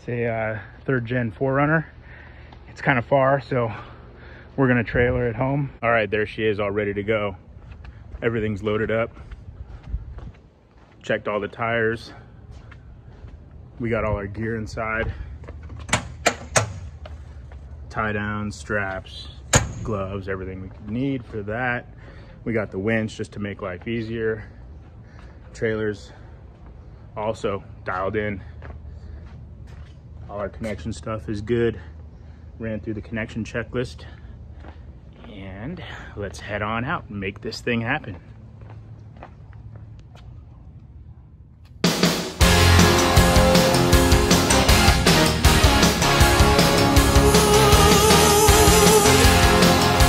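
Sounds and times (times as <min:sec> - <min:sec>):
footsteps on concrete: 0:00.5 - 0:03.1, 0:06.8 - 0:16.0, 0:16.8 - 0:18.5, 0:19.1 - 0:31.1, 0:33.8 - 0:40.9
loud rock music: 0:41.9 - 0:50.0.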